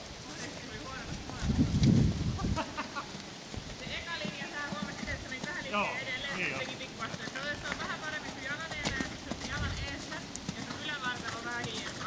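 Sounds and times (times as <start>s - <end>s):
horse hoofbeats on sand: 0.2s - 12.0s.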